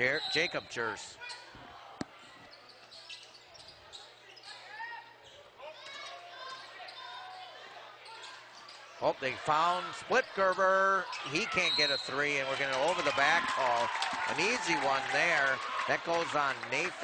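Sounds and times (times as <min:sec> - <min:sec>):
voices in a hall: 0:00.0 - 0:17.0.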